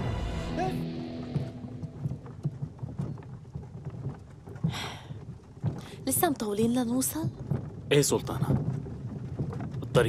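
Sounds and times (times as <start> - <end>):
music: 0.0 - 2.7
horse hooves clip-clopping: 0.9 - 10.0.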